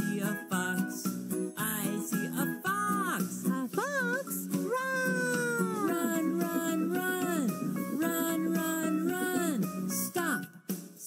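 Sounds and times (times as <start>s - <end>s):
person singing: 0.0s - 10.5s
backing track: 0.4s - 10.5s.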